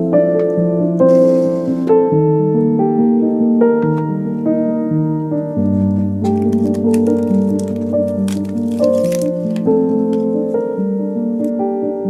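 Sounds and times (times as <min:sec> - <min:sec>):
background piano music: 0:00.0 - 0:12.0
plastic packaging crinkling: 0:05.8 - 0:10.6.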